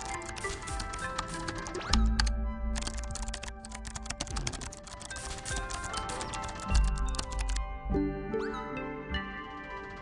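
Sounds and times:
rapid keyboard typing clicks: 0.0s - 7.6s
background music: 0.0s - 10.0s.

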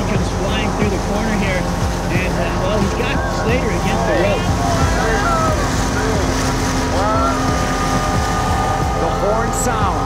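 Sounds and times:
boat motor rumble: 0.0s - 10.0s
faint voices: 0.0s - 10.0s
wind on microphone: 0.0s - 10.0s.

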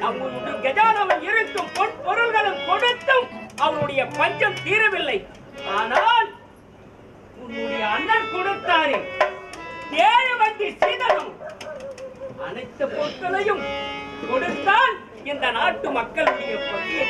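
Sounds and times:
held instrumental tones: 0.0s - 17.0s.

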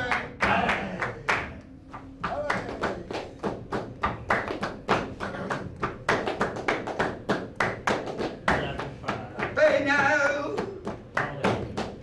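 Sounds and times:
rhythmic hand percussion: 0.0s - 12.0s.

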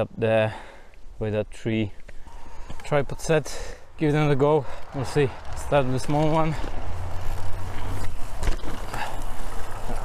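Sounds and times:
bike tyres rumbling on dirt: 4.0s - 10.0s.

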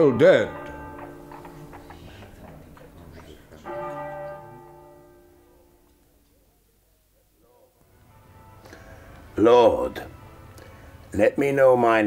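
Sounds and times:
large bell ringing: 0.0s - 6.4s.

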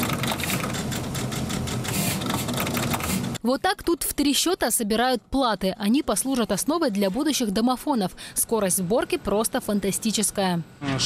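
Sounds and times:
fast clatter of machine clicks: 0.0s - 3.4s.

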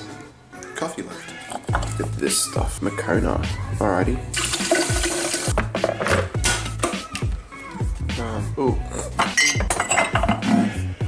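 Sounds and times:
background music: 0.0s - 11.0s
water running: 4.3s - 6.3s.

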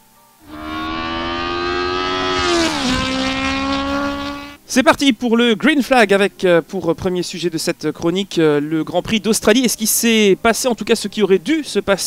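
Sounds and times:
racing car engine passing by: 0.4s - 4.6s.

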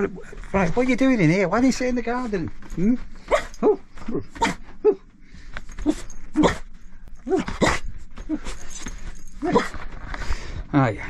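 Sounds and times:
dog yipping and whining: 3.2s - 5.1s, 5.8s - 8.7s, 9.3s - 9.8s.

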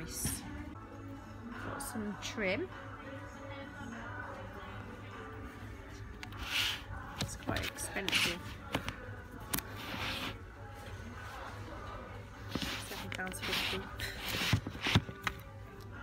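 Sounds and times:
faint background music: 0.0s - 16.0s.

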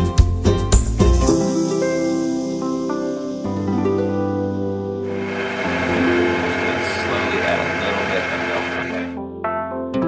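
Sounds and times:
gentle harp music: 1.3s - 9.1s
stand mixer whirring: 5.1s - 9.1s.

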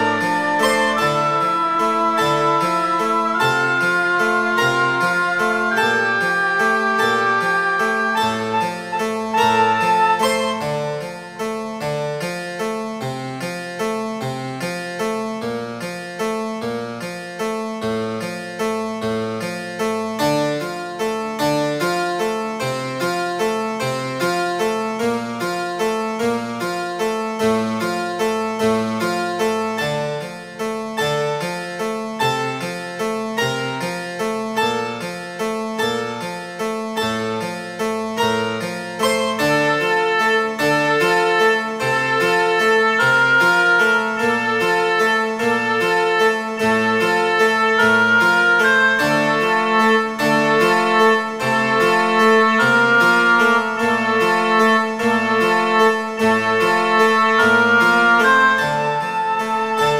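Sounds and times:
prepared piano playing fast notes: 0.0s - 59.9s.

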